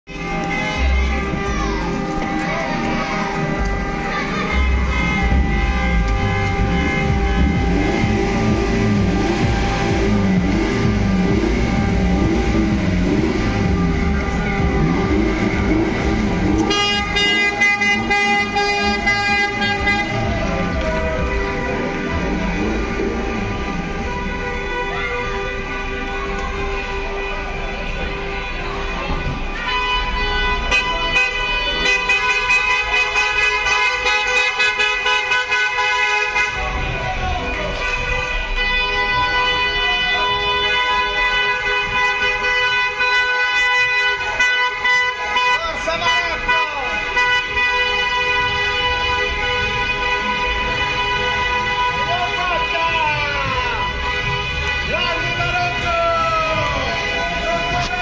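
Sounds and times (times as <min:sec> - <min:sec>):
music playing: 0:00.0 - 0:47.6, 0:48.3 - 0:58.0
car horns honking: 0:00.1 - 0:58.0.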